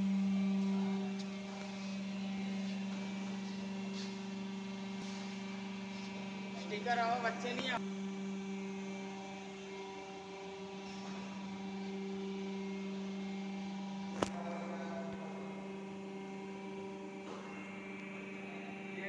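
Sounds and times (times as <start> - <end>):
hydraulic press motor hum: 7.4 - 19.0.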